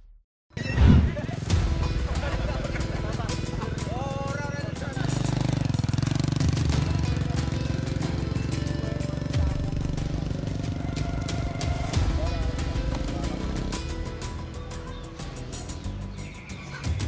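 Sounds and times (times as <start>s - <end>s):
background music: 0.6s - 17.0s
people's voices: 1.2s - 5.8s, 6.6s - 17.0s
motorcycle engine running: 1.7s - 17.0s.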